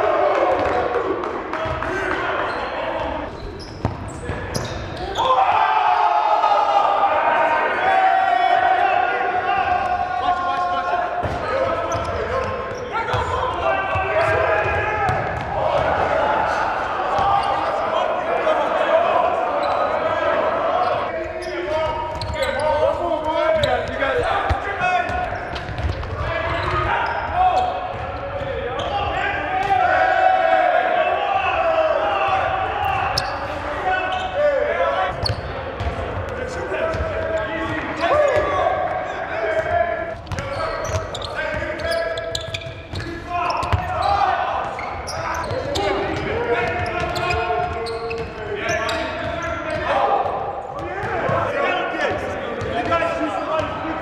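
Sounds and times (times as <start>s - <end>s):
players calling and chattering: 0.0s - 54.0s.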